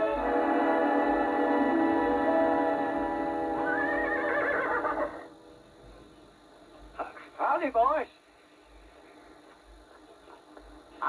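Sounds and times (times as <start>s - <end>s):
film music: 0.0s - 6.0s
horse whinnying: 3.6s - 5.3s.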